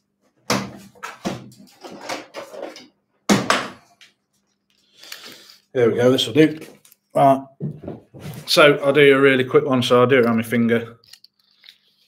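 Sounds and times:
objects knocking and clattering: 0.5s - 3.9s, 7.6s - 8.5s.

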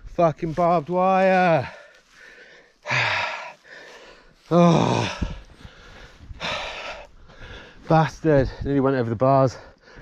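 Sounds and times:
man breathing hard: 1.6s - 7.9s, 9.6s - 10.0s
man groaning: 4.5s - 5.4s.

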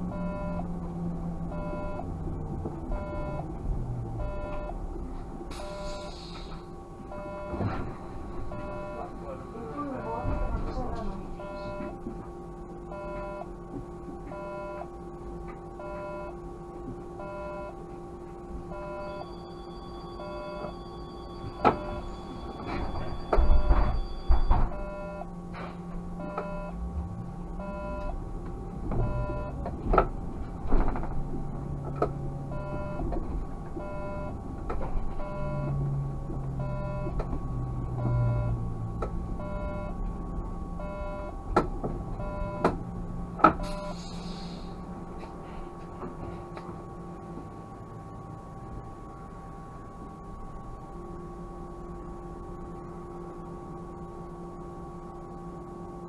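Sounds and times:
electrical hum: 0.0s - 56.0s
trolleybus motor whine: 0.0s - 56.0s
electronic beeping: 0.1s - 0.7s, 1.5s - 2.2s, 2.9s - 3.5s, 4.2s - 4.8s, 5.6s - 6.3s, 7.1s - 7.7s, 8.4s - 9.2s, 9.9s - 10.8s, 11.4s - 12.0s, 12.8s - 13.6s, 15.8s - 16.4s, 18.7s - 25.4s, 26.2s - 26.8s, 27.5s - 28.2s, 29.0s - 29.7s, 32.5s - 33.1s, 33.8s - 34.4s, 35.2s - 35.8s, 36.6s - 37.2s, 38.0s - 38.6s, 39.4s - 40.0s, 40.8s - 41.4s, 42.2s - 42.7s, 43.6s - 44.0s
clunks and knocks: 7.5s - 8.1s, 21.4s - 24.9s, 28.8s - 33.9s, 41.5s - 42.8s, 43.4s - 43.8s.

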